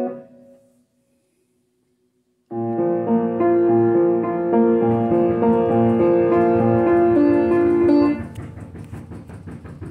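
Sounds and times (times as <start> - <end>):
piano chords: 0.0 - 0.8, 2.5 - 9.0.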